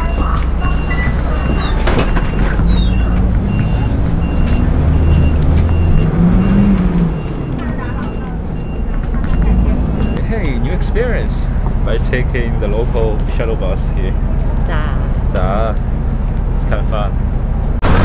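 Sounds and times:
bus engine and road rumble: 0:00.0 - 0:18.0.

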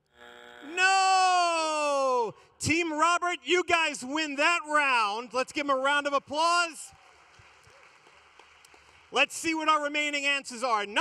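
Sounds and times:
faint audience applause: 0:06.2 - 0:10.2.

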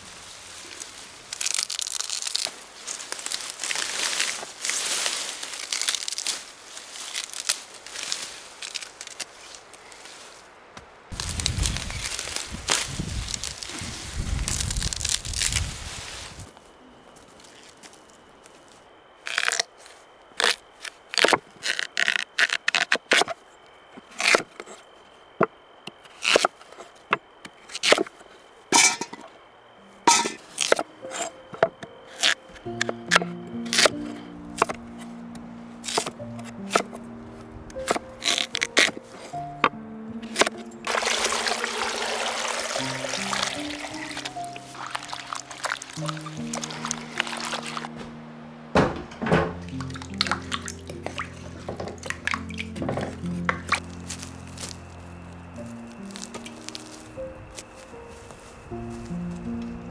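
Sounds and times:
roots torn from soil: 0:00.5 - 0:10.4, 0:11.1 - 0:16.5, 0:19.2 - 0:23.4, 0:26.1 - 0:26.7, 0:27.7 - 0:28.1, 0:30.1 - 0:31.4, 0:32.1 - 0:35.1, 0:35.8 - 0:37.0, 0:37.7 - 0:48.1, 0:49.6 - 0:59.8
pieces dropping into steel pot: 0:28.7 - 0:29.2, 0:30.1 - 0:30.4
water pouring into pot: 0:40.9 - 0:47.8.

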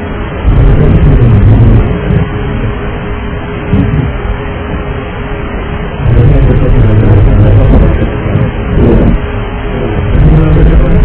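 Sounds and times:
muffled airliner cabin rushing: 0:00.0 - 0:11.0.

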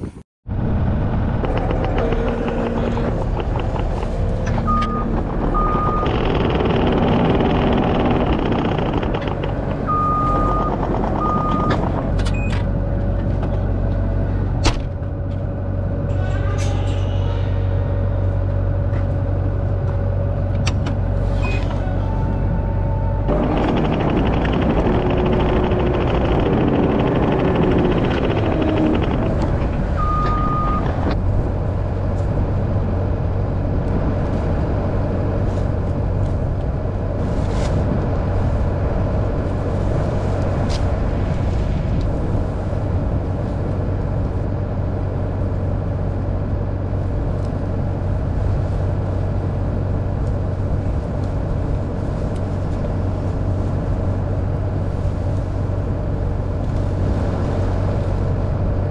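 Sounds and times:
tractor engine running: 0:00.0 - 0:16.1, 0:18.0 - 0:58.9.

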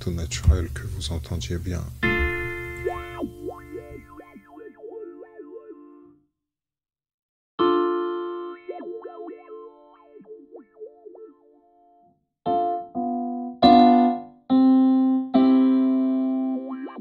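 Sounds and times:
electric piano chord with sweeping filter: 0:02.0 - 0:06.2, 0:07.6 - 0:17.0.

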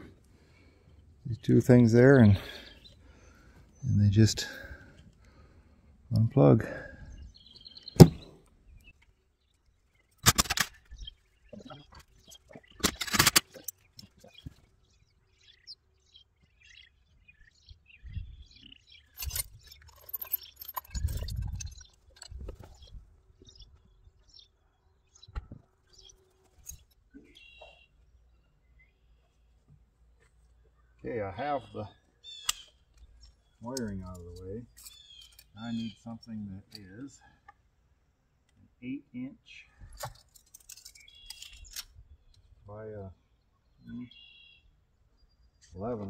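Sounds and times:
birds chirping: 0:00.0 - 0:46.0
sharp clatters of tools: 0:19.1 - 0:22.4, 0:40.0 - 0:41.9.

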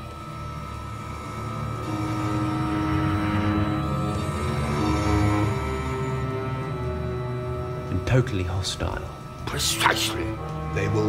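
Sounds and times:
low droning held notes: 0:00.0 - 0:11.0.

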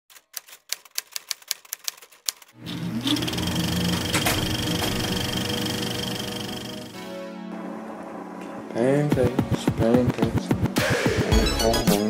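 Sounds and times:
typewriter keys clacking: 0:00.1 - 0:02.6.

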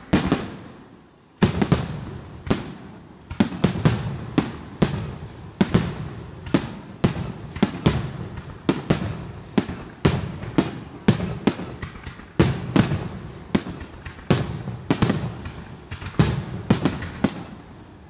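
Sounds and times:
fireworks bangs: 0:00.0 - 0:18.0.

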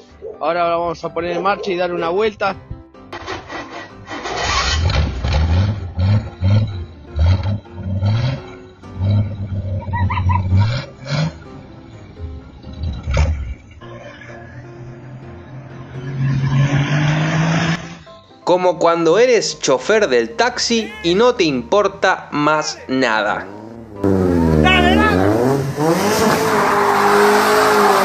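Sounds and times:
motorcycle engine revving: 0:03.2 - 0:11.6, 0:12.5 - 0:18.1, 0:23.4 - 0:28.0.

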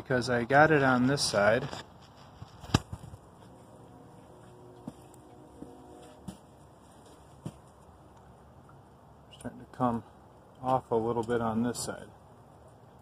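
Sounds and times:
low background noise: 0:00.0 - 0:13.0.

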